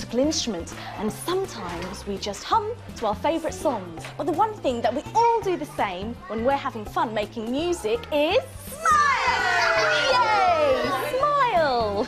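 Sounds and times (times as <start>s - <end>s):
soft background music: 0.0s - 12.0s
children and adults shouting together: 8.8s - 11.2s.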